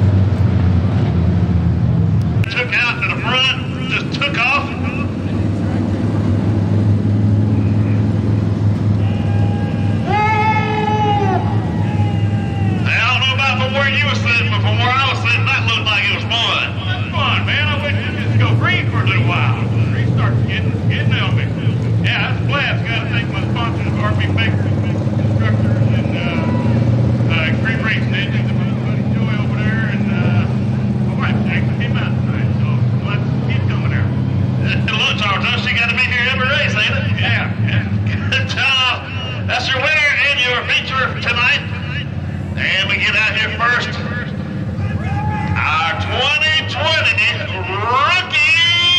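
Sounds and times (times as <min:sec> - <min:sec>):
car engine idling: 0:00.0 - 0:48.9.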